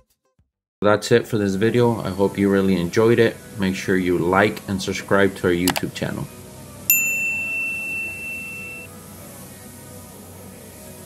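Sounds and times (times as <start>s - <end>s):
quiet background music: 0.8s - 11.0s
high electronic ding: 6.9s - 8.9s.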